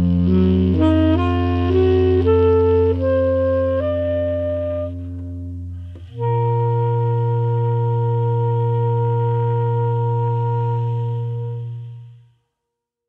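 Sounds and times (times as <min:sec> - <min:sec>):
saxophones playing held notes: 0:00.0 - 0:12.4.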